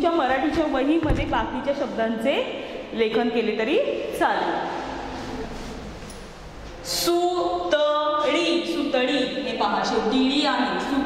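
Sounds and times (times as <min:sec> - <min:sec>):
woman speaking: 0:00.0 - 0:04.8, 0:06.9 - 0:11.0.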